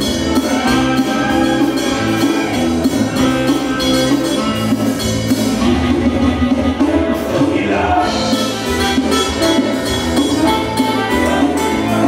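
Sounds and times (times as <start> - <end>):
bass guitar line: 0.0 - 12.0
drum kit beat: 0.0 - 12.0
electric guitar: 0.0 - 12.0
keyboard playing: 0.0 - 12.0.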